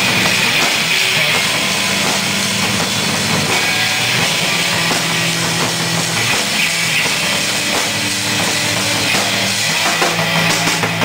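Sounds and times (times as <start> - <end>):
drum kits playing: 0.0 - 11.0
electric guitars: 0.0 - 11.0.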